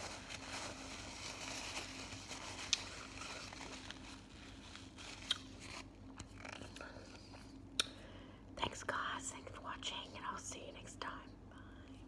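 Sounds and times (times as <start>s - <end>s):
woman whispering: 8.6s - 11.6s.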